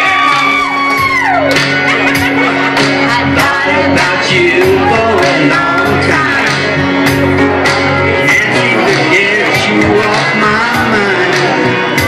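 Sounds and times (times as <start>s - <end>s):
high sliding whoop: 0.0s - 1.6s
music with steady backing: 0.0s - 12.0s.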